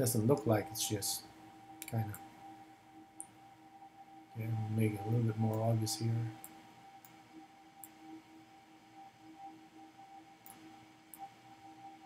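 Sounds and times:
constant high hum: 0.0 - 12.0.

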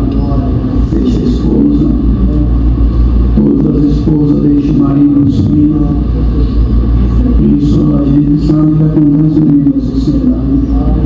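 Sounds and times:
man preaching over sound system: 0.0 - 2.6, 3.3 - 11.0
heavy low rumble: 0.0 - 11.0.

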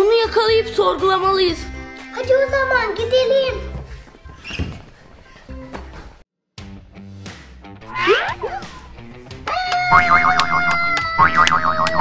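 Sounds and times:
background music with plucked rhythm: 6.6 - 12.0
cartoon sliding pitch effect: 7.8 - 8.6, 9.9 - 12.0.

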